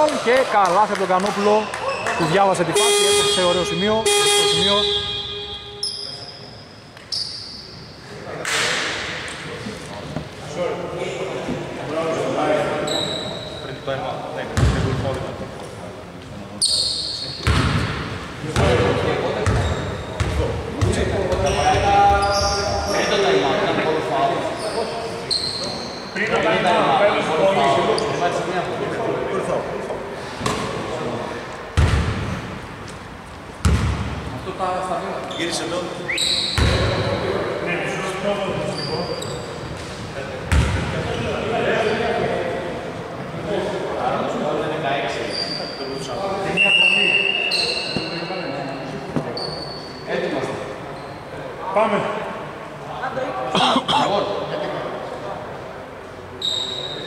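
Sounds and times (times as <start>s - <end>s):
men talking: 0.0s - 6.6s, 8.0s - 17.8s, 18.4s - 31.7s, 34.3s - 56.2s.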